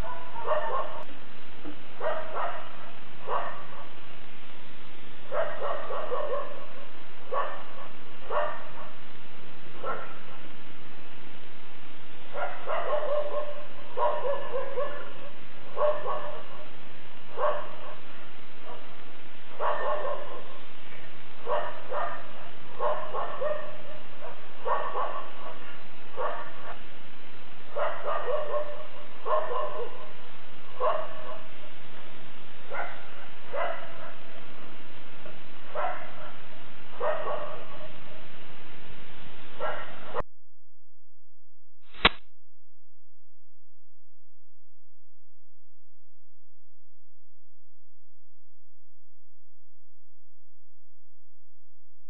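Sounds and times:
dog barking: 0:00.0 - 0:01.1, 0:02.0 - 0:04.0, 0:05.3 - 0:09.0, 0:09.8 - 0:10.4, 0:12.3 - 0:20.6, 0:21.4 - 0:26.9, 0:27.7 - 0:31.6, 0:32.7 - 0:34.5, 0:35.2 - 0:38.2, 0:39.6 - 0:40.2.

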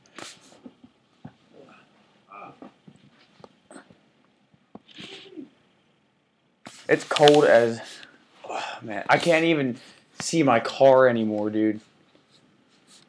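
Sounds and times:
soft murmured vocal sounds: 0:01.4 - 0:02.8
breathy hiss: 0:06.7 - 0:10.2.

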